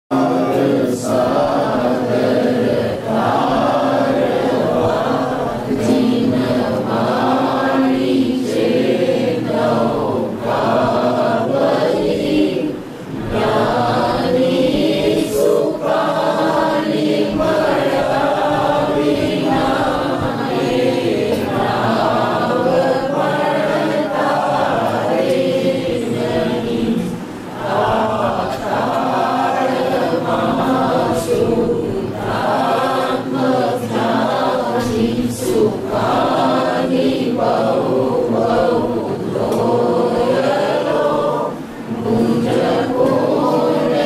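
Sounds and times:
group chanting a prayer: 0.1 - 44.0.

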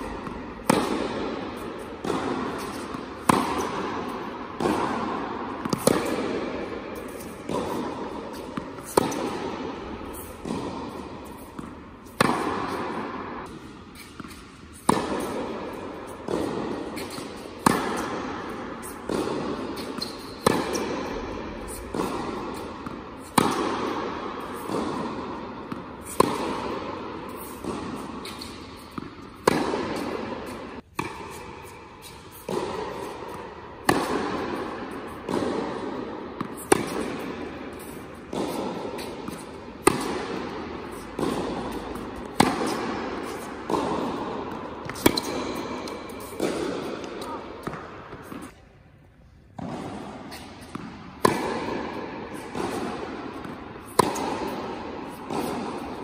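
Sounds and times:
racket hitting tennis ball: 0.0 - 56.0.

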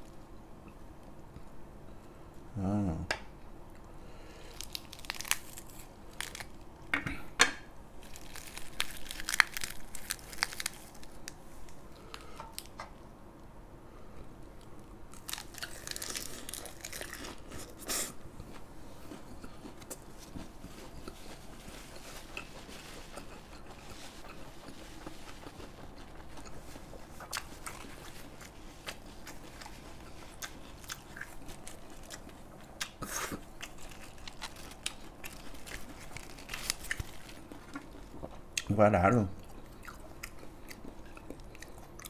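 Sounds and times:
crisp lettuce crunching: 4.4 - 6.7, 8.0 - 12.7, 15.1 - 38.7
person chewing: 15.1 - 38.7, 39.4 - 42.0.

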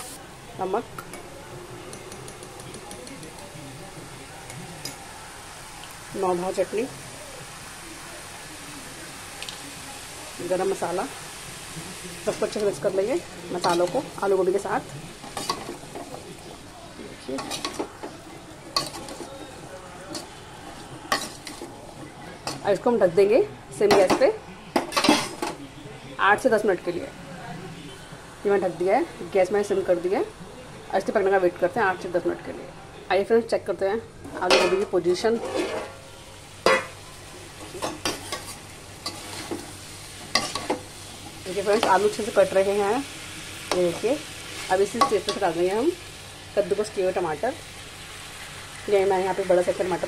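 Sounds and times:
food frying with low sizzle: 0.0 - 50.0
spatula clinking and scraping pan: 1.0 - 3.6, 13.5 - 16.6, 17.3 - 22.8, 23.8 - 25.6, 34.4 - 42.5, 43.7 - 45.6.

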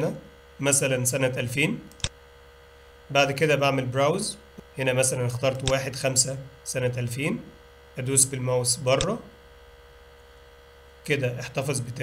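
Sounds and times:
electrical mains hum: 0.0 - 12.0
person speaking: 3.1 - 9.4, 11.0 - 12.0.

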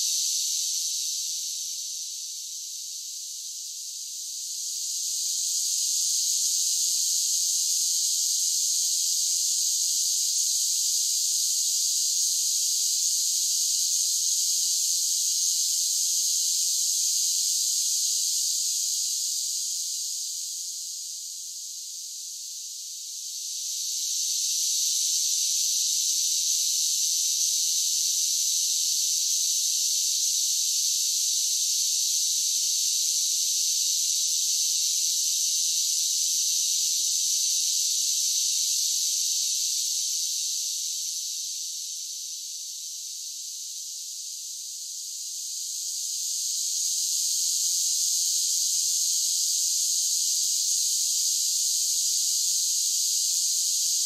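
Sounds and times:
high-pitched insect chorus: 0.0 - 54.0.

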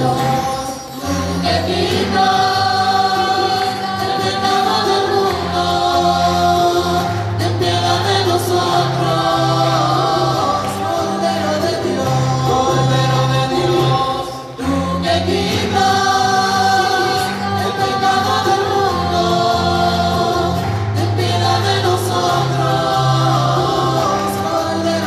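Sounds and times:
choir singing a hymn: 0.0 - 25.0.

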